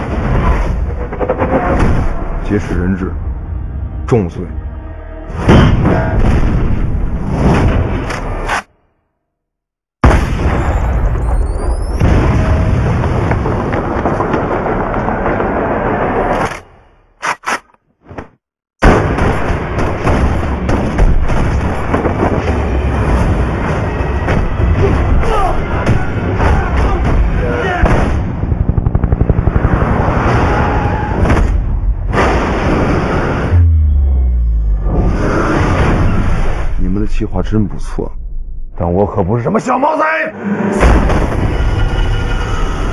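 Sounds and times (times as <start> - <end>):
explosion blast: 10.0 - 16.3, 18.8 - 25.2, 25.8 - 36.6, 40.6 - 42.6
rumbling crash: 10.0 - 16.4, 18.8 - 36.8, 40.4 - 42.9.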